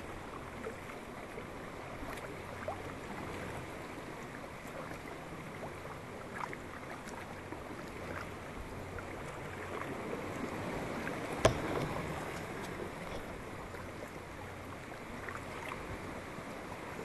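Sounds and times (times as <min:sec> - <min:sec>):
water lapping against a hull: 0:00.0 - 0:17.0
small splashes: 0:01.8 - 0:16.4.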